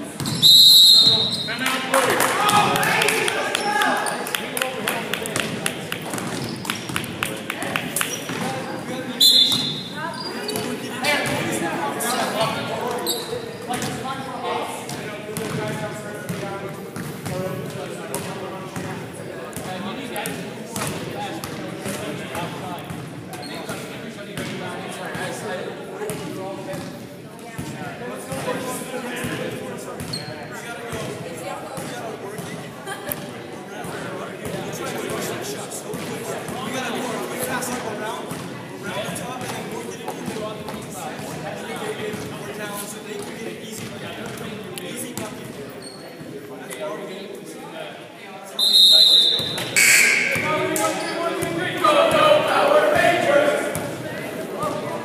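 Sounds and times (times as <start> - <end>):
indistinct chatter: 0.0 - 55.0
basketballs bouncing on wooden floor: 14.9 - 15.7.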